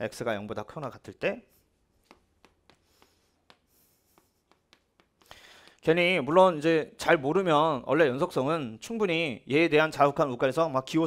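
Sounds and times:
chalk tapping and scratching on board: 0:02.0 - 0:05.3.

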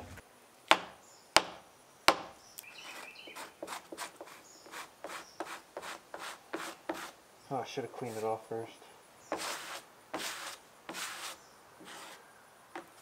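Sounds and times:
sharp knocks: 0:00.0 - 0:02.4
hand sanding fiberglass: 0:02.8 - 0:07.2, 0:09.3 - 0:12.2.

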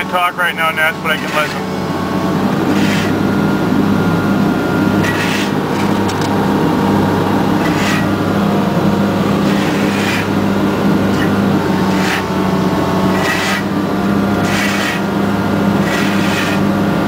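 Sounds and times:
diesel engine droning: 0:00.0 - 0:17.0.

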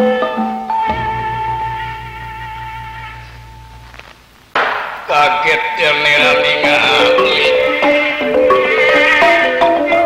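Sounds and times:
gamelan ensemble: 0:00.0 - 0:04.0, 0:06.0 - 0:10.0
sharp knock: 0:00.9 - 0:05.2.

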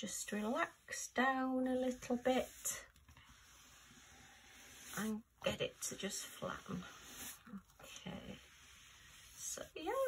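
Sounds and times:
hands swishing over canvas: 0:02.0 - 0:07.7.

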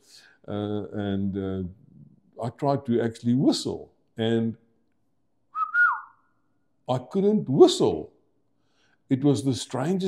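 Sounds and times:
man whistling: 0:05.5 - 0:06.3.

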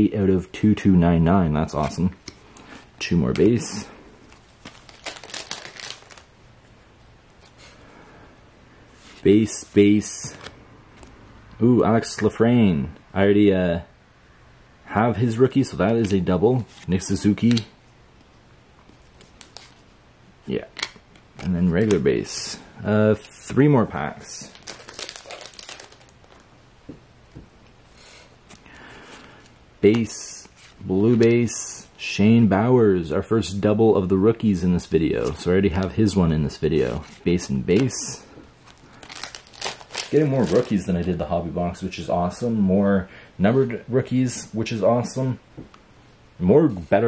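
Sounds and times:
cardboard cards clicking and rustling: 0:04.6 - 0:06.2, 0:24.5 - 0:26.4, 0:38.7 - 0:41.1.

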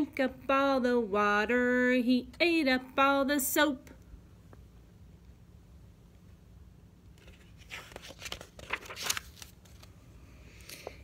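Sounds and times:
book page rustling: 0:07.2 - 0:10.0.

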